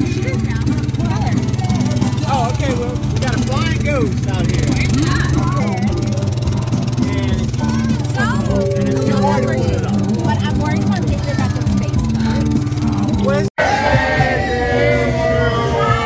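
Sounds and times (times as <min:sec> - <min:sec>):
people talking: 0:00.0 - 0:06.2, 0:07.0 - 0:16.0.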